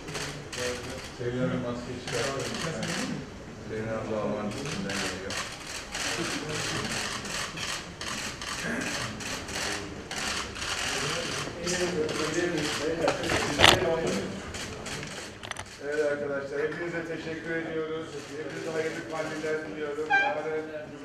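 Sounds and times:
murmur of voices: 0:00.0 - 0:21.0
camera shutters clicking: 0:04.6 - 0:15.8.

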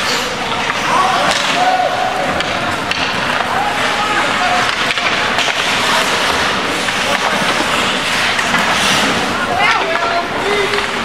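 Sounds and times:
skate blades scraping ice: 0:00.0 - 0:11.0.

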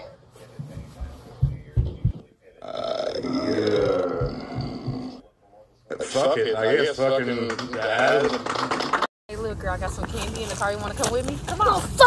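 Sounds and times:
man burping: 0:02.6 - 0:05.2.

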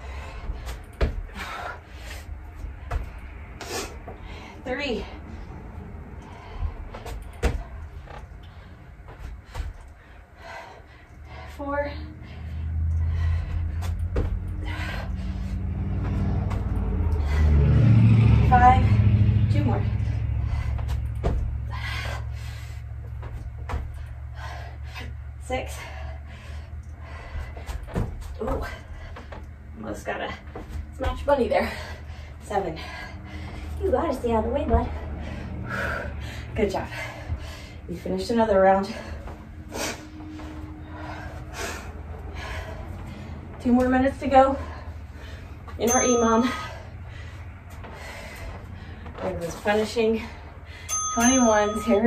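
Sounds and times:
heavy breathing: 0:00.0 - 0:43.6, 0:44.3 - 0:51.1
low rumble: 0:00.0 - 0:45.8.

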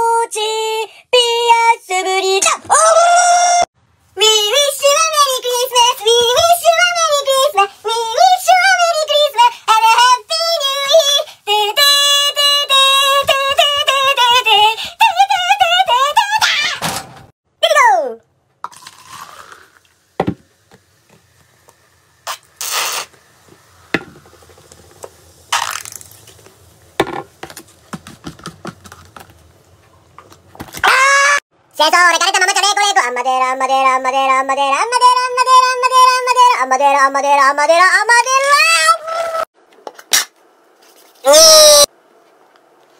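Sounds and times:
drink pouring into plastic cup: 0:18.6 - 0:21.8
soda fizzing: 0:18.6 - 0:28.2
squeeze bottle squirts: 0:22.2 - 0:23.2, 0:25.5 - 0:26.3.

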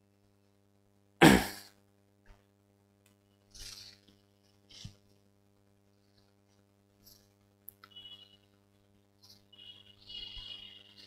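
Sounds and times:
man clearing his throat: 0:01.2 - 0:01.7.

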